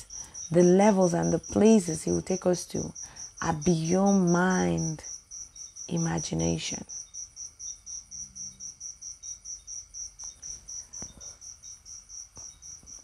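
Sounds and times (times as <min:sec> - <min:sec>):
insect chirping: 0:00.0 - 0:13.0.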